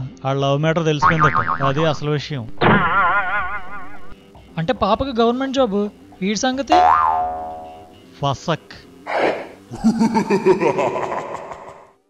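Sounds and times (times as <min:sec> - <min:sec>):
person speaking: 0:01.0 - 0:02.1
cartoon boing sound effect: 0:01.0 - 0:04.1, 0:06.7 - 0:07.9.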